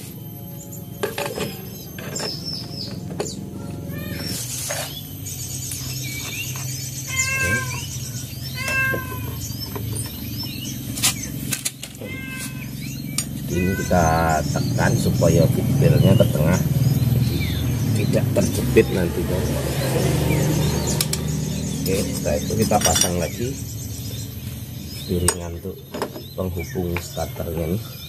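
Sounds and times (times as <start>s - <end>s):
cat meowing: 3.5s - 4.4s, 7.0s - 9.4s, 12.0s - 12.8s, 13.5s - 14.4s
metal clinks: 21.8s - 23.3s.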